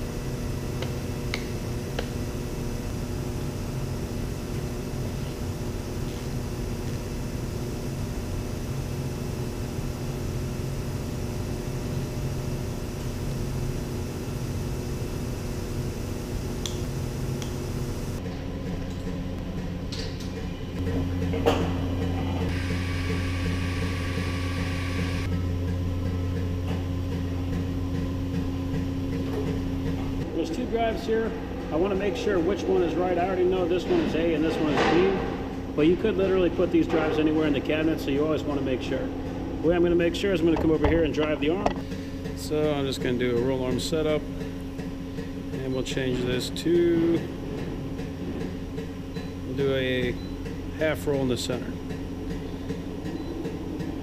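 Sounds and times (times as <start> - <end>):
industrial machinery hum: 0.0 - 54.0
low machinery hum: 0.0 - 54.0.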